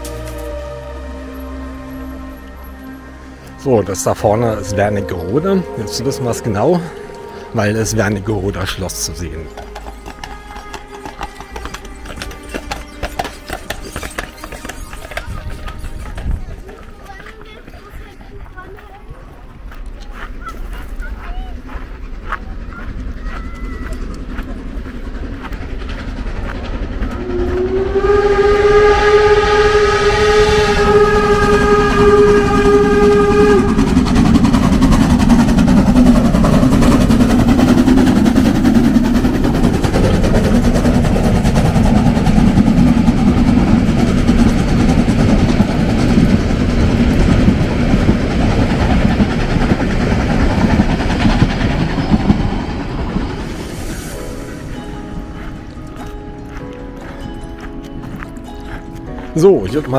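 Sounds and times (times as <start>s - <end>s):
train rumbling and clattering: 0.0s - 59.9s
steam whistle blast: 27.1s - 34.6s.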